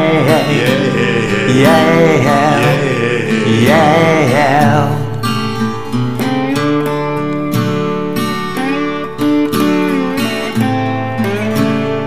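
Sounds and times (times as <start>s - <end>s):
acoustic guitars playing soul ballad: 0.0s - 12.0s.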